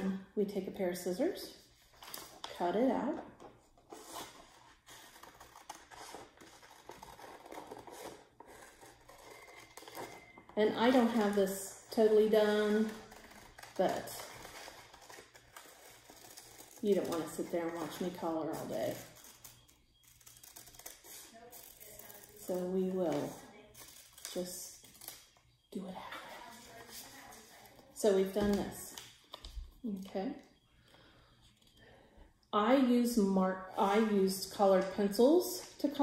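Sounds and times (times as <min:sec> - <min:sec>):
paper rustling: 0:03.4 - 0:25.3, 0:26.1 - 0:29.6.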